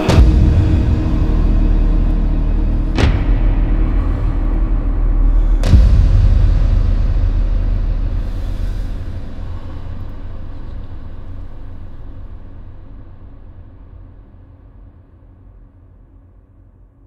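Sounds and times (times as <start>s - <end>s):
dark ambient drone: 0.0s - 17.0s.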